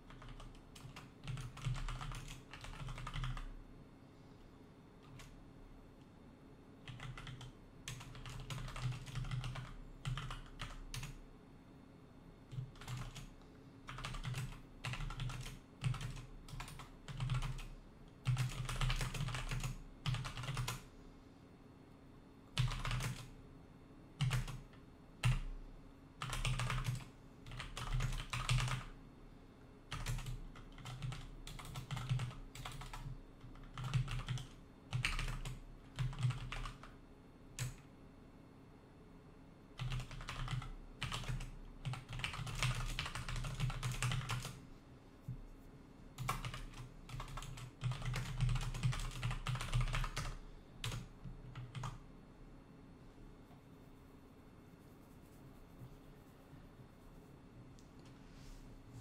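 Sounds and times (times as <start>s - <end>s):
typing on computer keyboard: 0.0s - 3.5s, 5.0s - 5.4s, 6.8s - 11.2s, 12.5s - 20.8s, 22.6s - 23.3s, 24.2s - 25.5s, 26.2s - 28.9s, 29.9s - 37.0s, 37.6s - 37.8s, 39.8s - 44.6s, 46.2s - 52.0s.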